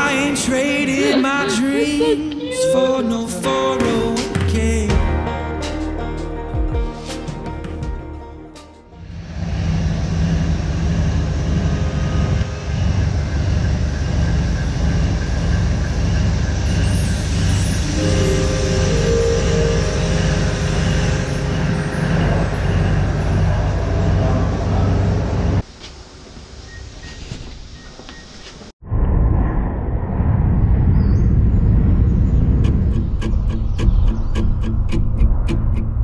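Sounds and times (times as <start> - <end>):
steady tone: 9.0 - 25.6
diesel train engine rumbling: 9.0 - 27.1.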